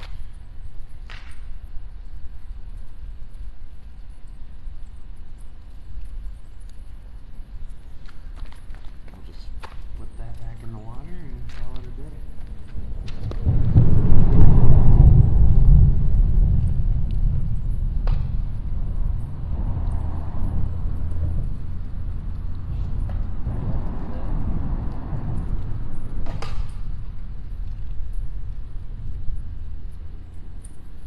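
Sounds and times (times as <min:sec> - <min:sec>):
low rumble: 0:09.3 - 0:31.0.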